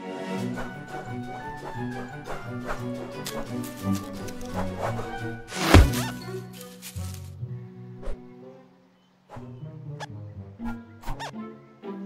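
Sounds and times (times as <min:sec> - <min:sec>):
orchestral film music: 0:00.0 - 0:12.0.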